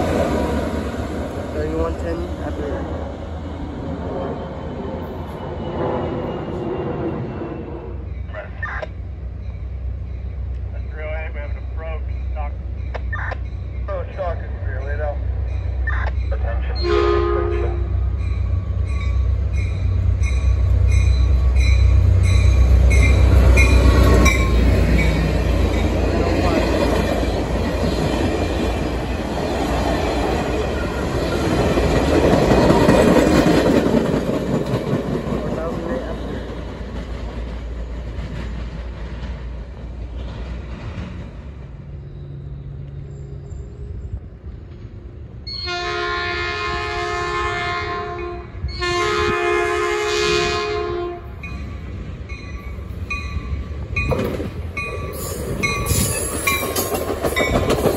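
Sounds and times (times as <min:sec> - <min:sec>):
diesel train passing at speed: 0:00.0 - 0:57.9
train horn blasts: 0:16.8 - 0:18.1, 0:45.5 - 0:51.4.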